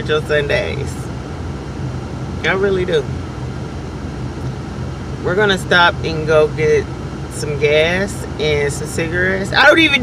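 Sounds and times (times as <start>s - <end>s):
car engine hum inside cabin: 0.0s - 10.0s.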